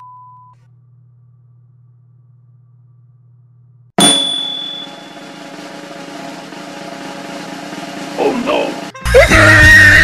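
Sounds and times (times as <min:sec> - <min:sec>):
loud percussive hit with ringing: 0:04.0 - 0:08.1
background music: 0:04.1 - 0:10.0.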